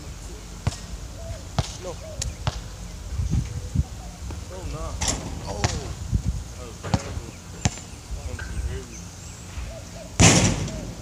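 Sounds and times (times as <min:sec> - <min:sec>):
basketball bouncing: 0:01.6 - 0:01.8, 0:02.4 - 0:02.7, 0:06.8 - 0:07.9.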